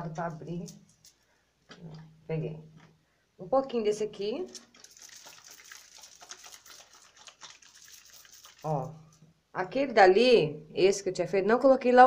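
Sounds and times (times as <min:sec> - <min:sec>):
soapy hands squishing: 0:04.5 - 0:09.2.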